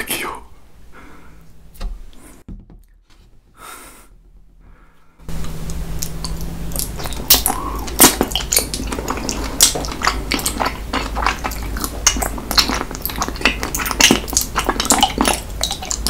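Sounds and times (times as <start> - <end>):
sticky mouth clicks and smacks: 5.4 - 16.0
wet sucking and slurping: 6.0 - 16.0.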